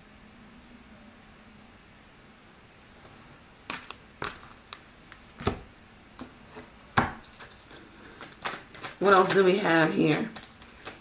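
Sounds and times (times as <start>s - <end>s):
cards snapping and tapping: 3.7s - 5.6s, 7.0s - 11.0s.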